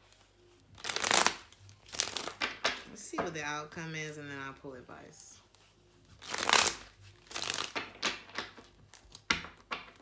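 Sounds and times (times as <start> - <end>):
cards being shuffled: 0.0 - 2.9, 5.4 - 10.0.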